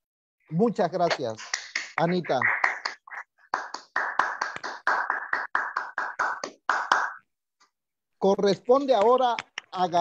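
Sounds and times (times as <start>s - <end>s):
hands clapping: 1.1s - 7.3s, 8.8s - 10.0s.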